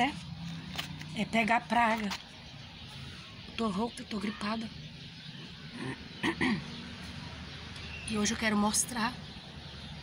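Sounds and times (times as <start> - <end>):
woman clearing her throat: 6.2 - 6.7.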